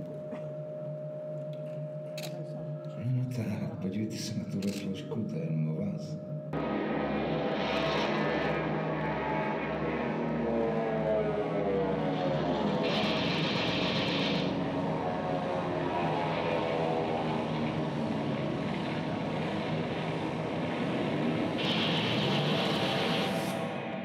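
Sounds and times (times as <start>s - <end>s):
droning engine: 0.0s - 24.0s.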